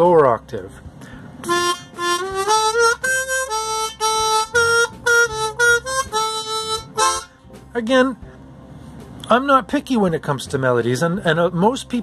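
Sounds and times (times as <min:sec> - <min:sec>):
harmonica playing a melody: 0:01.4 - 0:07.6.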